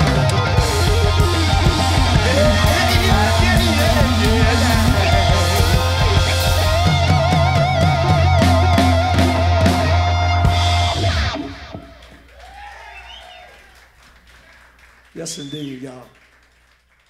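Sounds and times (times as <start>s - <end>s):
electric guitar with vibrato: 0.0s - 12.1s
drum kit: 0.0s - 12.3s
keyboard bass: 0.0s - 12.3s.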